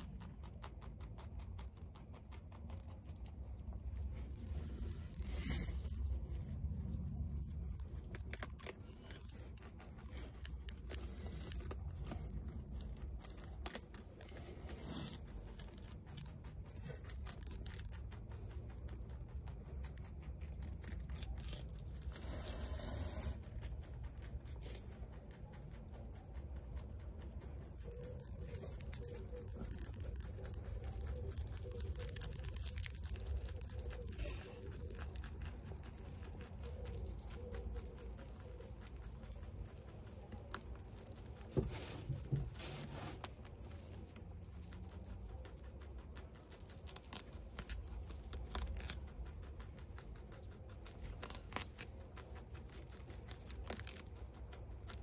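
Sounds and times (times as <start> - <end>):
low steady rumble: 0.0 - 55.0
rabbit chewing leaf crunches: 0.0 - 55.0
leaf rustling: 27.8 - 49.6, 50.2 - 55.0.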